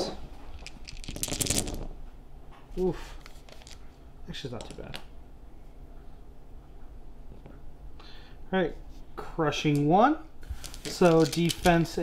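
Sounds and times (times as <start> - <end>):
dice clattering on a mat: 0.5 - 2.0, 3.3 - 3.8, 10.5 - 12.0.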